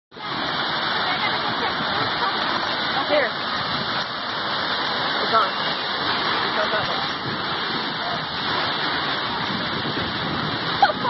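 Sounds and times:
water rushing down water slide: 0.1 - 11.0.

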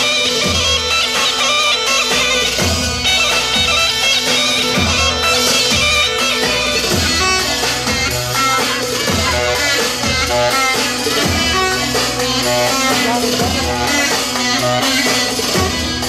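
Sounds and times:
loud dance music: 0.0 - 16.0.

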